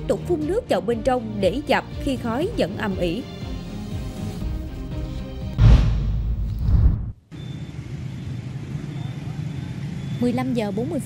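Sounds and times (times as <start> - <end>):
low rumble of street traffic: 7.2 - 11.0.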